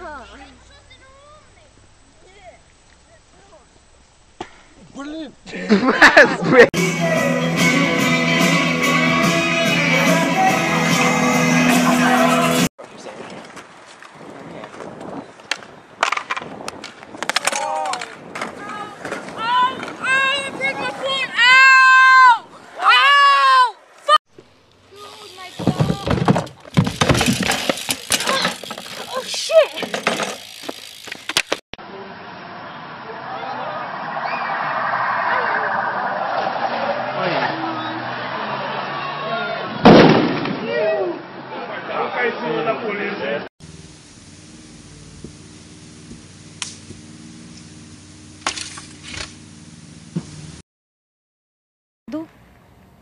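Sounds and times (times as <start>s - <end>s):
rustle: 0.0s - 5.5s, 43.6s - 50.6s
bike crashing on asphalt: 25.4s - 31.6s
sudden sharp noises: 32.2s - 40.8s
people's voices: 33.0s - 39.8s.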